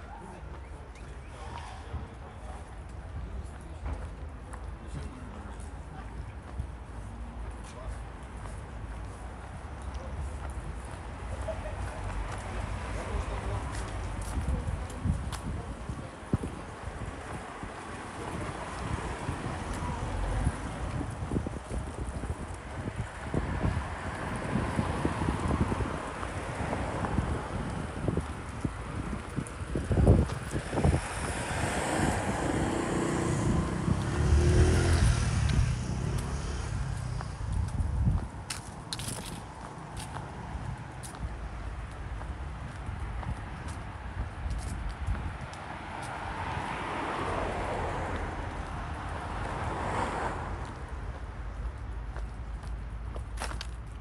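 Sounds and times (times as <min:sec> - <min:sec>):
road traffic passing: 0:00.0 - 0:54.0
wind on microphone: 0:14.0 - 0:46.8.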